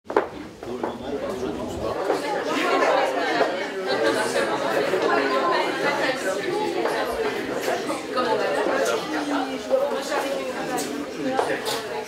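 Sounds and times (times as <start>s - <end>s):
crowd chatter in a large hall: 0.1s - 12.0s.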